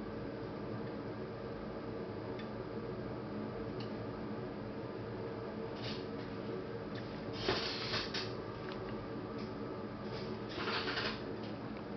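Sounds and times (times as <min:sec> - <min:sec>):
background hum and hiss: 0:00.0 - 0:11.9.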